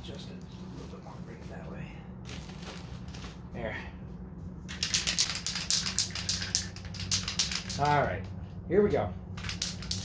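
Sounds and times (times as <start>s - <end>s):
spray can being shaken: 4.7s - 8.2s, 9.4s - 10.0s.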